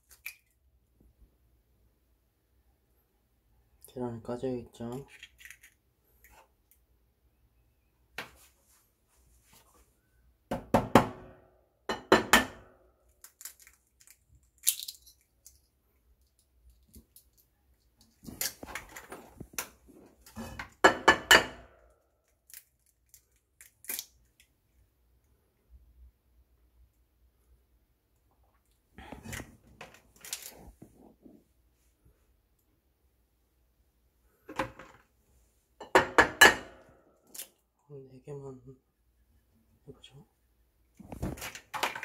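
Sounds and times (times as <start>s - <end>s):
eggs cracking on a ceramic plate: 11.9s - 15.6s.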